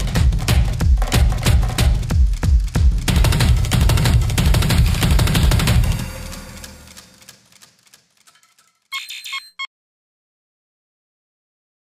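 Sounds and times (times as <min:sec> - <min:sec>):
electronic logo chime beeps: 0:08.9 - 0:09.7.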